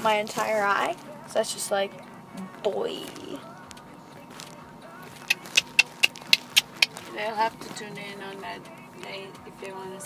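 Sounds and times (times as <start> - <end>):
sharp clicks: 5.2 - 7.0.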